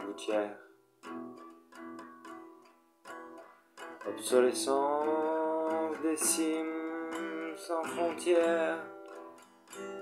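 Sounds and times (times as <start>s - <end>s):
acoustic guitar plucked notes: 0.0s - 10.0s.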